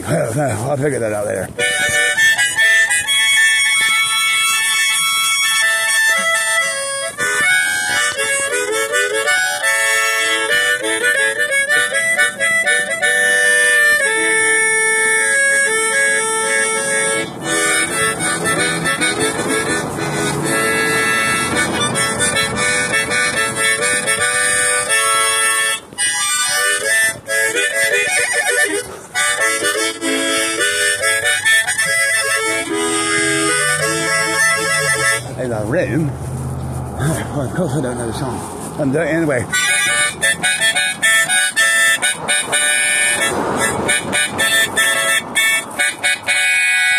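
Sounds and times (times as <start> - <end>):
harmonica melody: 0.0 - 46.9
breath sounds: 36.1 - 37.4.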